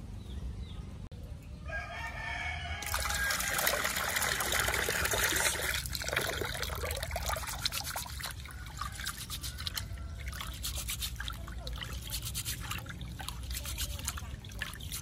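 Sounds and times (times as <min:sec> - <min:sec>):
rooster crowing: 0:01.7 - 0:03.9, 0:08.3 - 0:10.2
water running into metal pot: 0:02.8 - 0:15.0.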